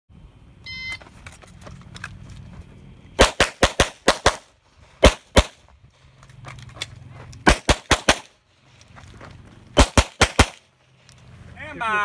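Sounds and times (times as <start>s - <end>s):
pistol shots: 3.2s - 5.6s, 7.4s - 8.3s, 9.8s - 10.6s.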